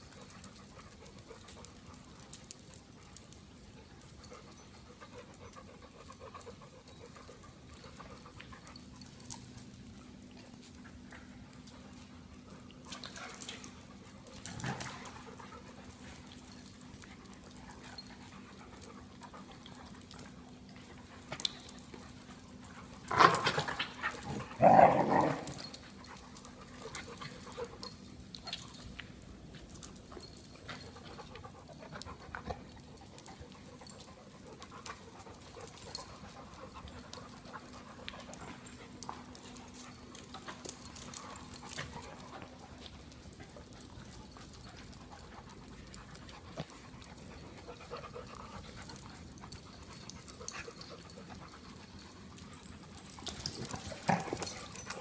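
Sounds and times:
dogs scuffling: 0.0s - 55.0s.

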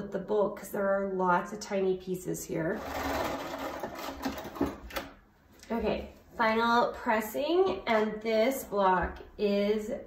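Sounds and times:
sewing machine stitching: 2.8s - 5.1s.

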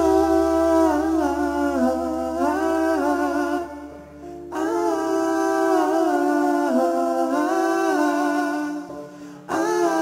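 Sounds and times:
man singing wordless notes: 0.0s - 10.0s.

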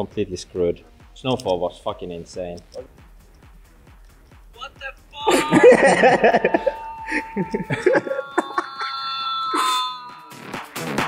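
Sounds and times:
people laughing: 5.2s - 8.5s
electronic alarm tone from phone speaker: 5.2s - 10.6s.

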